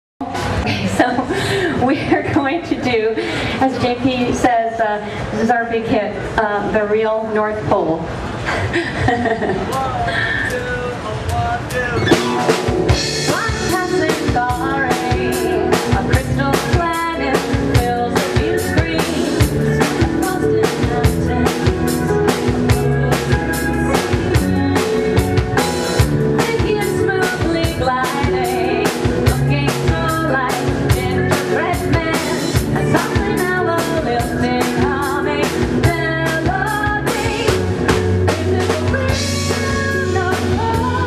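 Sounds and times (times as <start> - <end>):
live band playing: 0.2 - 8.5, 9.6 - 41.0
drum kit beat: 9.6 - 41.0.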